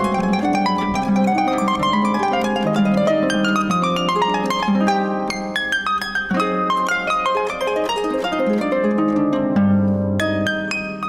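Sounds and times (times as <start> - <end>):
harp plucked notes: 0.0 - 11.0.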